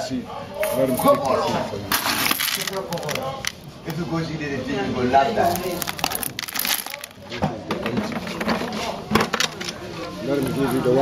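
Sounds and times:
pellets rattling into plastic bucket: 0:02.0 - 0:03.6, 0:05.4 - 0:07.2.

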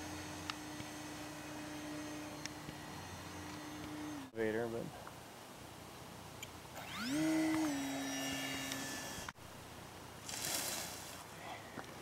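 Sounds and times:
electric motor whine: 0:00.0 - 0:04.3, 0:06.8 - 0:09.4.

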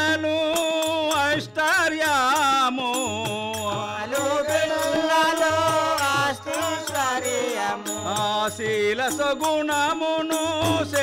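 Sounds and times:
harmonium: 0:00.0 - 0:11.0.

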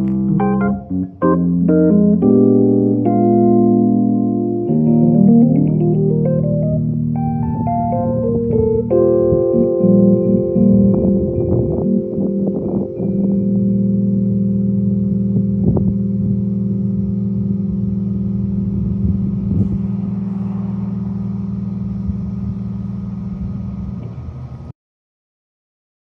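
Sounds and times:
electric piano chord ringing: 0:00.0 - 0:24.7.

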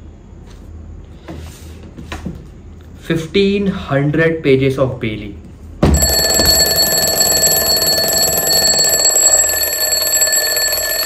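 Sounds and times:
twin-bell alarm clock ringing: 0:05.9 - 0:11.0.

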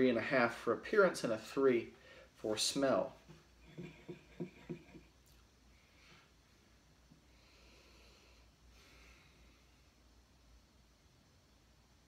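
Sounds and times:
faint breathing: 0:01.9 - 0:02.5, 0:05.7 - 0:06.5, 0:07.1 - 0:10.1.

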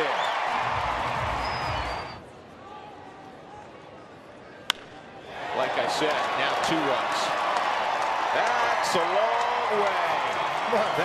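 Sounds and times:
ballpark crowd noise: 0:00.0 - 0:11.0
wooden bat hitting ball: 0:04.7 - 0:04.9.

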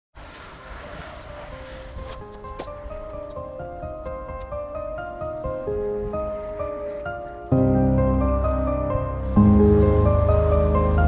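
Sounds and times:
steady outdoor rumble: 0:00.1 - 0:11.0
faint music notes: 0:00.6 - 0:11.0.

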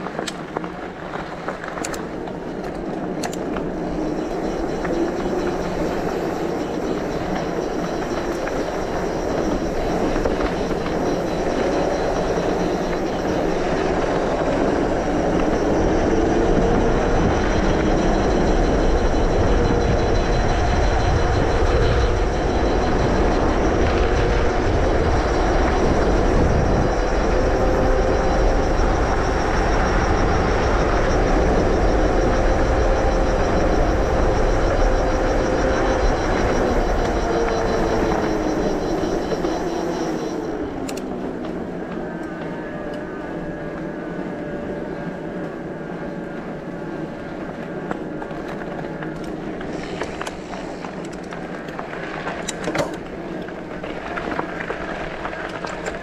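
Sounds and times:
tyre noise on asphalt: 0:00.0 - 0:56.0
electric bike motor whining: 0:01.5 - 0:56.0
wind on microphone: 0:01.9 - 0:56.0.

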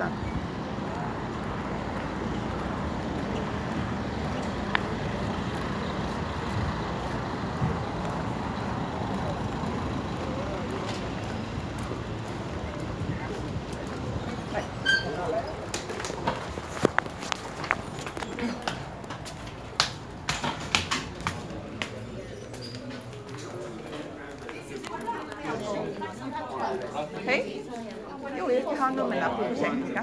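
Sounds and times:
city street traffic: 0:00.0 - 0:30.0.

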